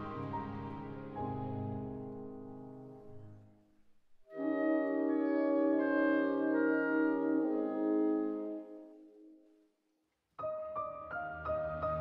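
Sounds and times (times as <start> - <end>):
clarinets holding sustained notes: 0.0 - 2.3
piano chord: 0.0 - 3.6, 10.4 - 12.0.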